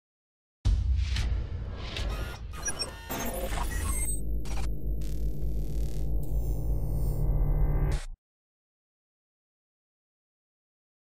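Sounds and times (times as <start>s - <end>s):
glitchy electronic blips: 2.0s - 8.2s
low bass hum: 4.1s - 8.0s.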